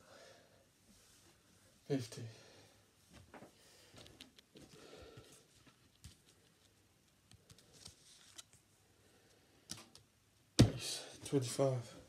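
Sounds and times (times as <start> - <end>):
man breathing heavily: 3.5 - 5.6.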